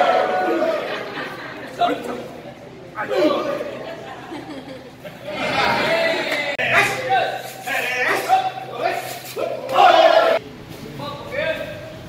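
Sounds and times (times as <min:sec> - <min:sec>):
people talking in echoing hall: 0:00.3 - 0:12.0.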